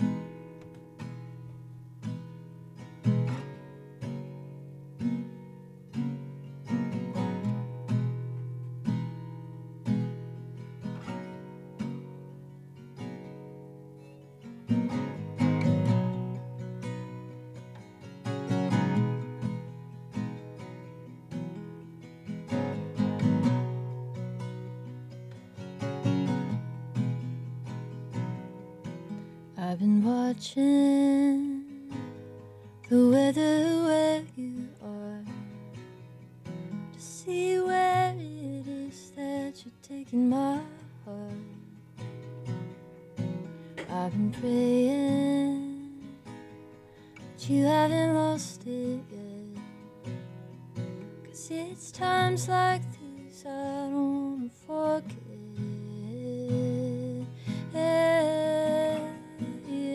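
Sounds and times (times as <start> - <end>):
acoustic guitar: 0.0 - 59.9
woman singing: 29.5 - 32.2, 32.8 - 35.6, 36.9 - 41.7, 43.8 - 46.4, 47.2 - 49.9, 51.2 - 59.9.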